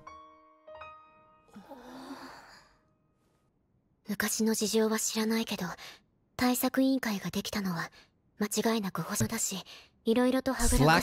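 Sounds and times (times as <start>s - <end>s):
person sighing: 1.5s - 2.8s.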